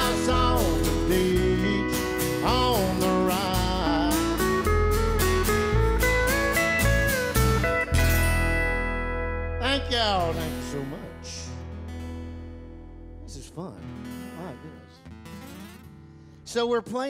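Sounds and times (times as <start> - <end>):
upright bass: 0.0 - 15.0
strummed acoustic guitars: 0.0 - 17.0.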